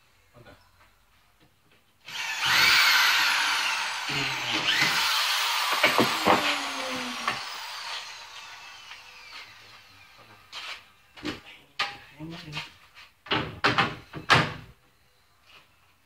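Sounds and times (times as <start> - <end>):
power tool motor whining: 2.1 - 10.3
sharp knocks: 5.7 - 6.5.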